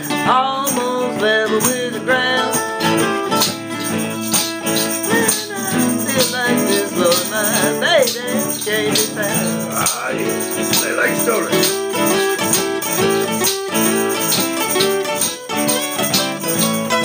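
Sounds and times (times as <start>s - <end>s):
person singing: 0.0s - 3.0s, 3.8s - 13.6s
blues band playing: 0.0s - 17.0s
shaker rattle: 2.5s - 17.0s.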